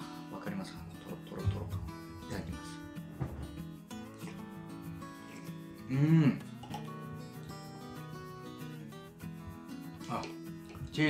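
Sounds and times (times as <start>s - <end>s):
light background music: 0.0s - 11.0s
person murmuring: 5.8s - 6.6s.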